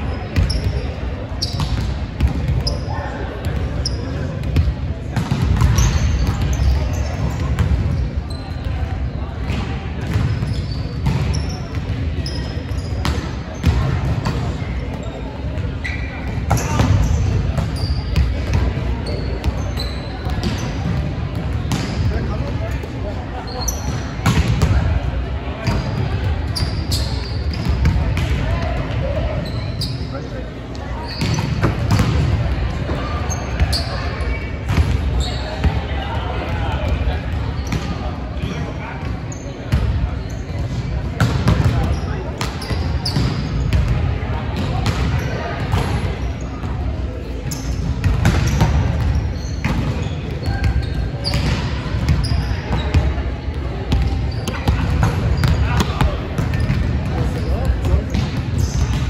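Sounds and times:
sneaker squeaks: 0.0s - 24.8s, 25.6s - 35.8s, 36.4s - 44.0s, 44.6s - 59.0s
volleyballs smacking and bouncing: 4.4s - 8.0s, 24.2s - 24.9s, 47.4s - 52.2s, 53.9s - 59.0s.

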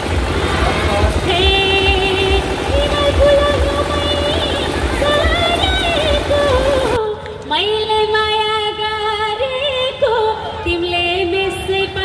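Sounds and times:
heavy pulsing bass: 0.0s - 7.0s.

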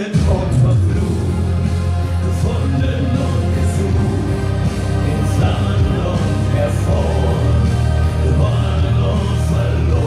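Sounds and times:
live pop-rock band: 0.0s - 10.0s
man singing lead vocal: 0.0s - 10.0s
choir-like backing singing: 0.5s - 10.0s.

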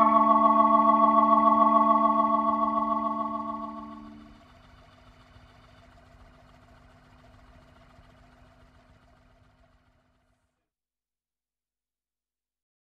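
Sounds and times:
keyboard chord: 0.0s - 4.4s
low steady hum: 0.0s - 10.6s.

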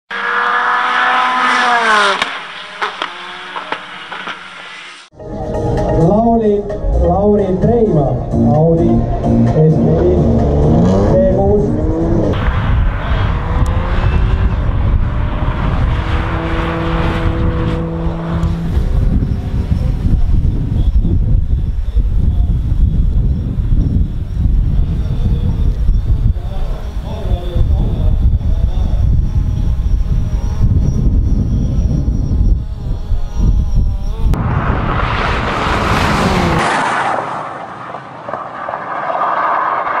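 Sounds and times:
car engine accelerating: 0.1s - 5.1s, 8.9s - 20.9s, 29.1s - 40.0s
wind rushing noise: 10.4s - 40.0s.

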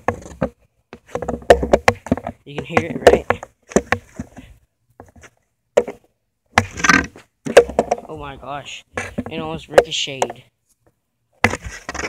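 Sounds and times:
skateboard thumping on asphalt: 0.0s - 8.1s, 11.4s - 12.0s.

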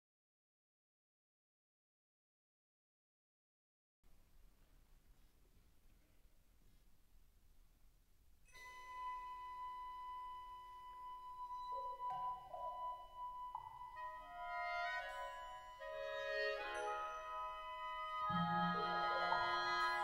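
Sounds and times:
wind band playing held tones: 8.6s - 20.0s.

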